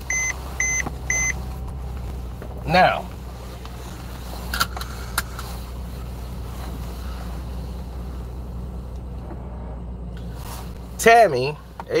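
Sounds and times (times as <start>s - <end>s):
car idling hum: 0.0s - 12.0s.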